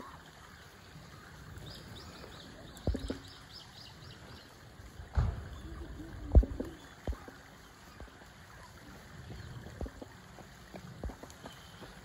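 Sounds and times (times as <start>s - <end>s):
low outdoor background: 0.0s - 12.0s
low thumps on microphone: 2.8s - 3.3s, 6.3s - 7.3s.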